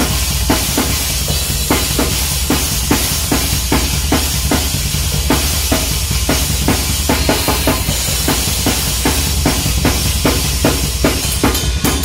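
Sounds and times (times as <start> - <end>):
cymbals crashing: 0.0 - 12.0
fast bass drum: 0.0 - 12.0.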